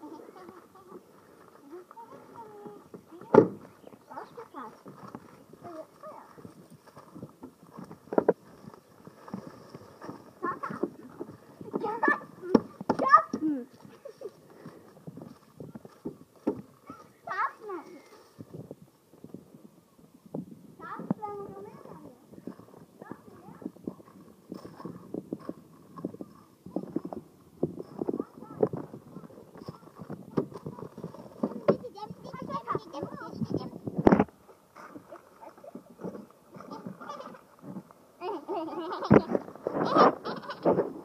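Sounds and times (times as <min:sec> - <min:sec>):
children's voices: 0:00.0 - 0:06.7, 0:09.9 - 0:14.4, 0:16.8 - 0:18.4, 0:20.8 - 0:25.1, 0:27.8 - 0:33.9, 0:34.8 - 0:37.6, 0:38.2 - 0:40.8
footsteps on gravel: 0:00.3 - 0:12.8, 0:22.4 - 0:32.4.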